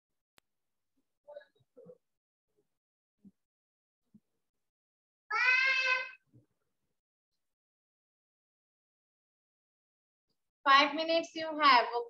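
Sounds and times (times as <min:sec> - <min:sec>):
cat meowing: 0:05.3 - 0:06.2.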